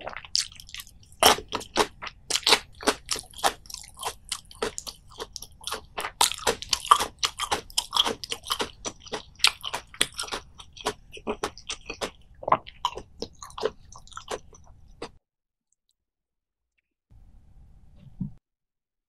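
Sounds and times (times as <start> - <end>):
person chewing crunchy food: 0.0 - 15.2.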